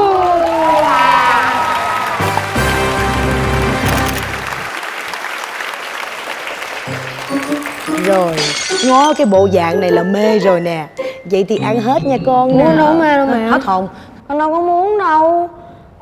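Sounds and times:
audience applause: 0.0s - 9.2s
backing music: 2.2s - 4.7s, 6.9s - 13.6s
person singing jingle: 7.0s - 13.1s.

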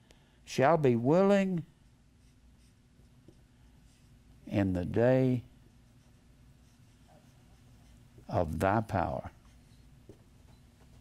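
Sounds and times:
marker writing on whiteboard: 5.9s - 8.3s.

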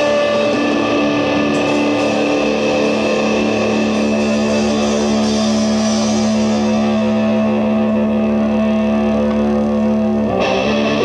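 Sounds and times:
distorted electric guitar drone: 0.0s - 11.0s
live rock band: 0.0s - 11.0s.

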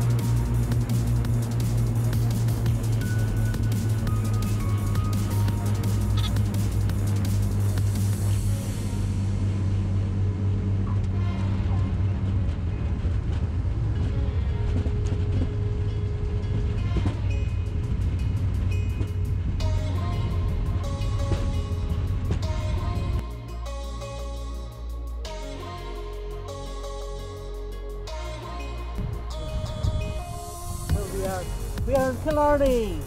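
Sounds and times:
background music with regular beat: 0.0s - 9.2s, 16.8s - 33.0s
steady low drone: 0.0s - 33.0s.

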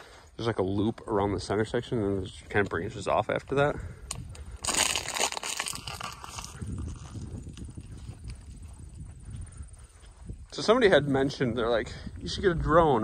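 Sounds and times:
footsteps crunching through dry brush: 0.2s - 13.0s.

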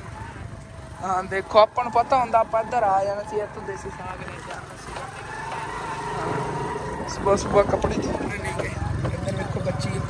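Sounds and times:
motorcycle engine rumble: 0.0s - 10.0s.

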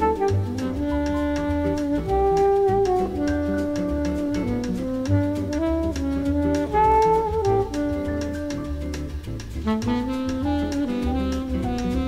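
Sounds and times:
bass line: 0.0s - 12.0s
jazz horn melody: 0.0s - 12.0s
percussion beat: 0.0s - 12.0s.

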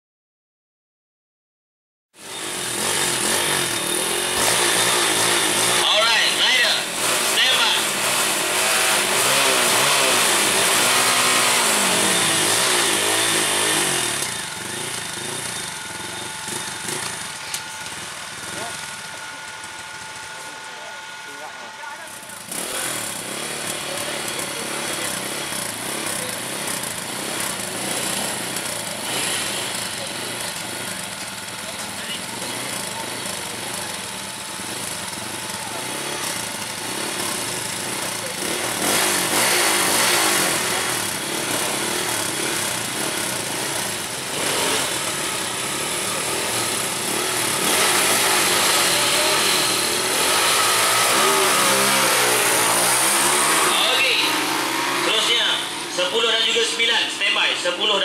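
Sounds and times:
motorbike engines revving: 2.2s - 58.0s
motorbikes accelerating away: 2.3s - 18.9s, 22.4s - 58.0s.

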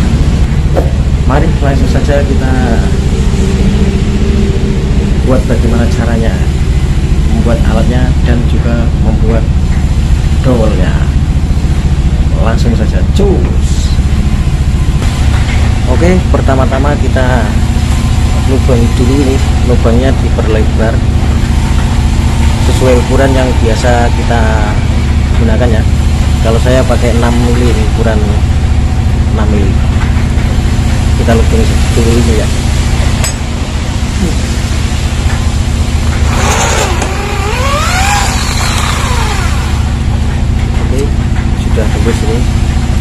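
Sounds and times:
electric motor droning: 36.0s - 41.1s
drill bit squealing on metal: 36.2s - 40.1s.

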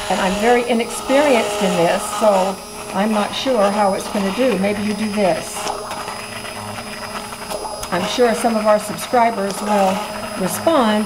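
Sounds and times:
immersion blender blending soup: 0.0s - 11.0s.

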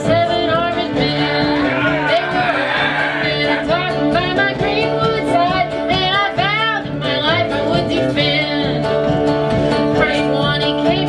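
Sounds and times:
fiddle: 0.0s - 11.0s
guitar: 0.0s - 11.0s
upright bass: 0.0s - 11.0s.

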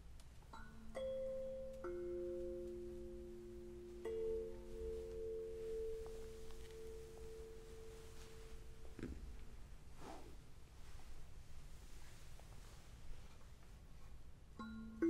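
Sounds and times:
tuning forks ringing: 0.6s - 8.9s.

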